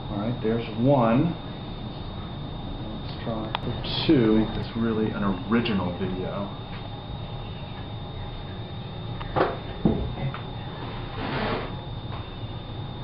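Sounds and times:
faint hum with high whine: 0.0 - 13.0.

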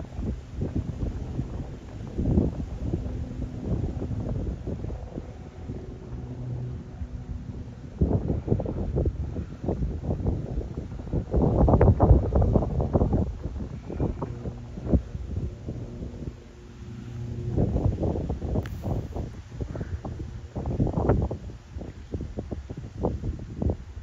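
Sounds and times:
faint low engine drone: 0.0 - 24.0
wind buffeting microphone: 0.0 - 24.0.

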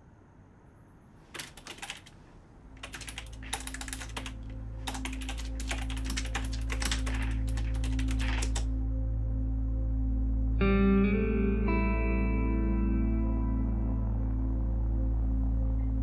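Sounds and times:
computer keyboard typing: 1.3 - 8.7
low steady drone: 7.5 - 16.0.

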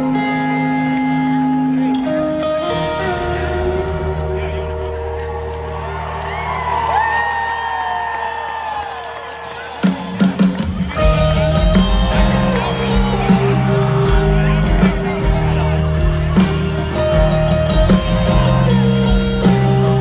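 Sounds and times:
live band playing: 0.0 - 7.2, 7.8 - 20.0
crowd cheering and whooping: 4.5 - 19.0.

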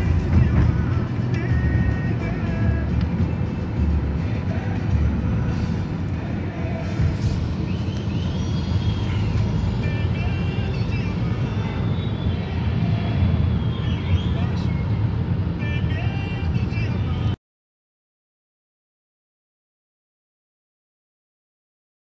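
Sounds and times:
road and engine rumble in car: 0.0 - 17.4.

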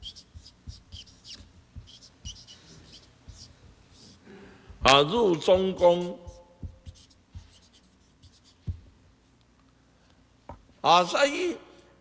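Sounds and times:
marker scratching on paper: 0.0 - 8.9
soft low thump: 6.6 - 7.5.

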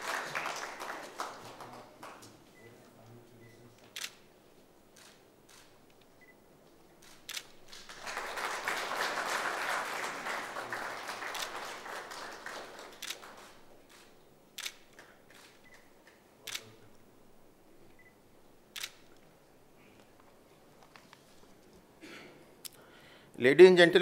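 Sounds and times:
audience applause: 0.0 - 2.3, 7.6 - 13.8
camera shutter clicks: 4.0 - 4.2, 7.0 - 7.6, 13.0 - 13.3, 13.9 - 16.7, 18.8 - 19.1.

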